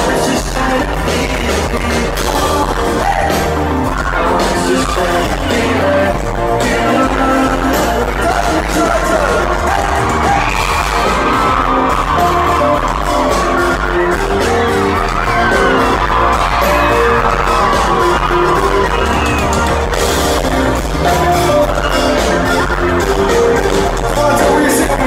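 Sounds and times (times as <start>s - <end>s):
live electronic pop music: 0.0s - 25.0s.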